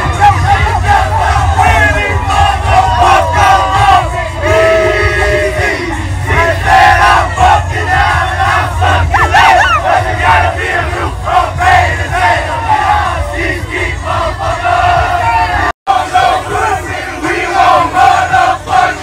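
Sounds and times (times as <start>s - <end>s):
crowd of men chanting: 0.0s - 19.0s.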